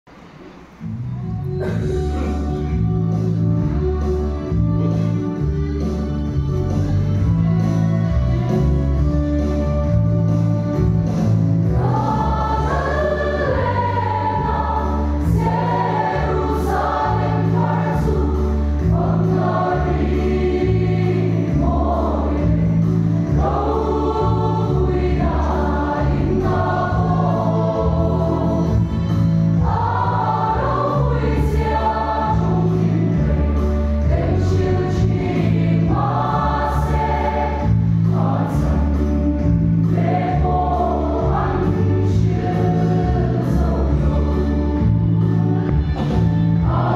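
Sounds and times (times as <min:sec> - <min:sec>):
choir singing a hymn: 0:10.7 - 0:46.9
low instrumental bass line: 0:15.4 - 0:46.9.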